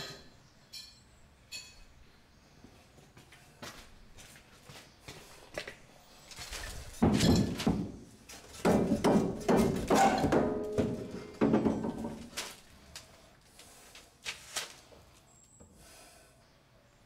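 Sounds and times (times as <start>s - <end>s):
metal pipe rattling against wall: 6.8s - 12.5s.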